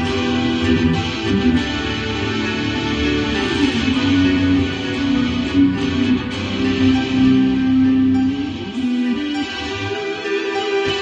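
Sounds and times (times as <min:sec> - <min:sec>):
backing track: 0:00.0 - 0:11.0
electric guitar lead: 0:00.0 - 0:11.0.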